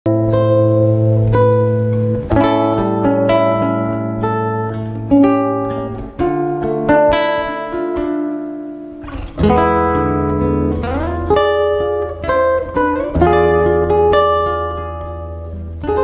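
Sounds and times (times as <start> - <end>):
plucked guitar-like chords: 0.0 - 16.0.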